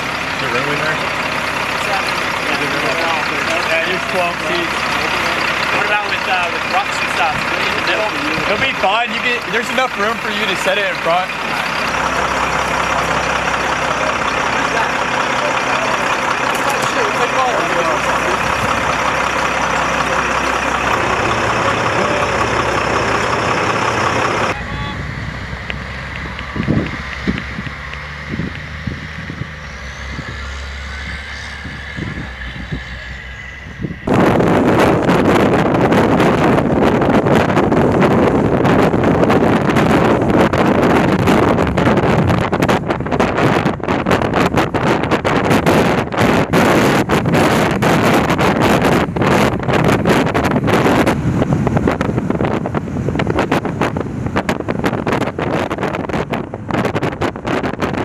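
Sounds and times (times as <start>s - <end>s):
truck engine running: 0.0s - 58.0s
wind and road noise: 0.0s - 58.0s.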